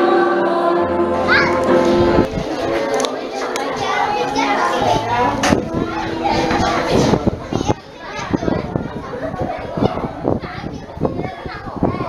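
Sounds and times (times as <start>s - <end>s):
children chattering and shouting: 0.0s - 12.0s.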